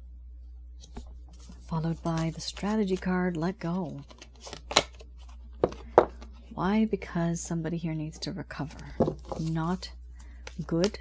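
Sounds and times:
cards snapping: 4.1 - 5.0.

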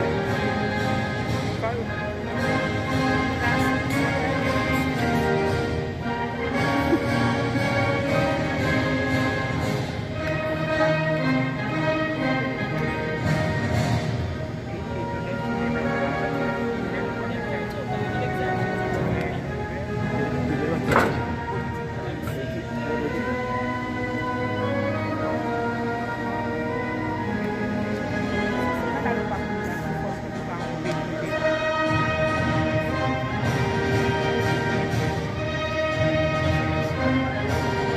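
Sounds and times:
anthem instrumental music: 0.0 - 37.9.

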